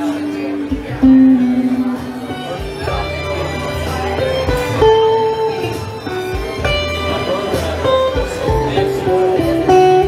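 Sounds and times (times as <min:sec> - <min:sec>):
electric guitar melody: 0:00.0 - 0:10.0.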